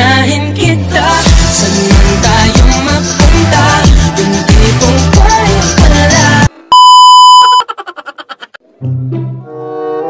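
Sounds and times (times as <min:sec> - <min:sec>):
low music: 0:00.0 - 0:06.6
test-tone beep: 0:06.7 - 0:07.6.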